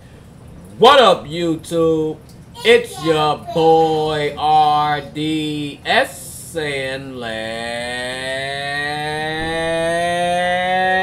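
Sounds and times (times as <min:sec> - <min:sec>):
man singing long note: 0:07.2 - 0:11.0.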